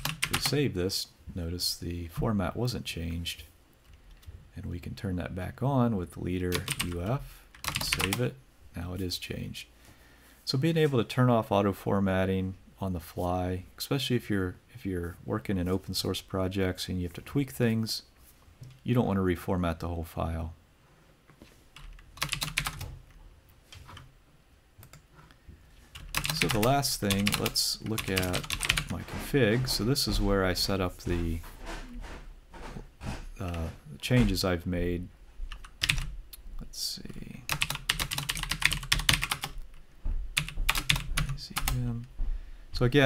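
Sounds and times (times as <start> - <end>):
computer keyboard keystrokes: 0.0 - 0.6, 6.5 - 6.9, 7.5 - 8.2, 21.8 - 23.0, 26.0 - 28.9, 35.5 - 36.1, 37.5 - 39.6, 40.4 - 41.8.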